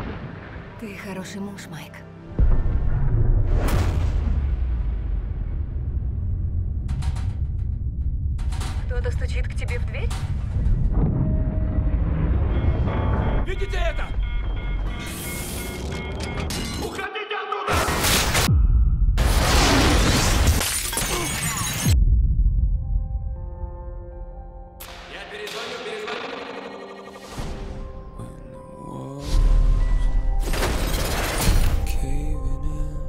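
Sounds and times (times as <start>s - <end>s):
explosion blast with shattering debris: 0.0s - 0.8s, 2.4s - 6.8s, 17.8s - 22.2s
deep falling booms: 2.4s - 13.5s
machinery low rumble: 4.5s - 13.5s
man speaking: 28.2s - 29.4s, 31.8s - 33.0s.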